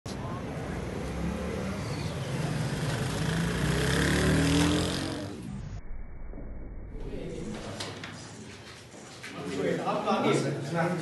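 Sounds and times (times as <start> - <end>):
vehicle engine revving: 0.8 - 5.8.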